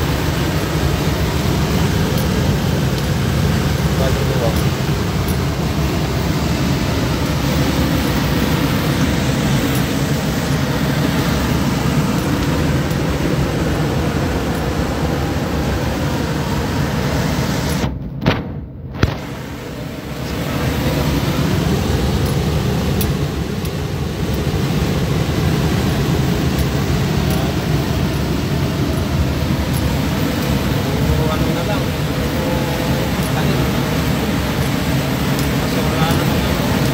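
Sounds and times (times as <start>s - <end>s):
road and engine noise in a cab: 0.0s - 17.9s, 19.2s - 36.9s.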